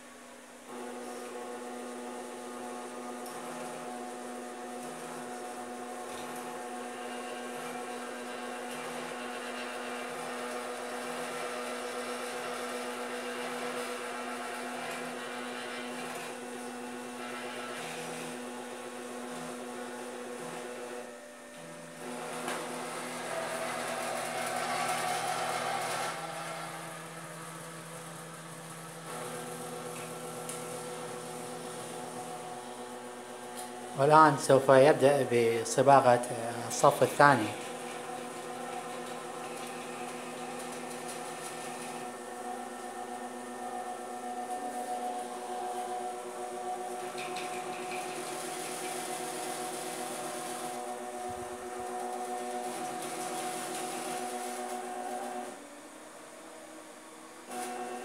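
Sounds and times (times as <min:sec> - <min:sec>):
electric motors whirring: 0:00.0 - 0:58.0.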